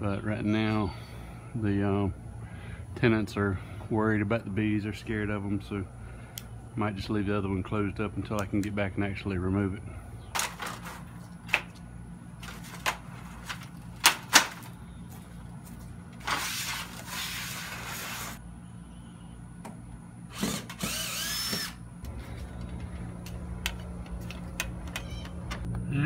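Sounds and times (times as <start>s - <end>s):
power drill running: 20.3s - 21.8s.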